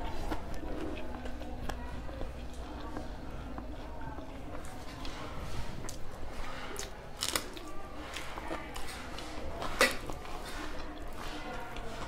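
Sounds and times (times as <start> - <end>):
person chewing with mouth smacks: 0.0 - 12.0.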